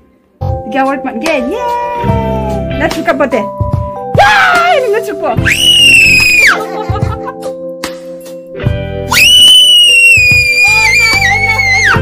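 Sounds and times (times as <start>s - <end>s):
background music: 0.0s - 12.0s
girl shrieking with delight: 5.4s - 6.6s, 9.1s - 12.0s.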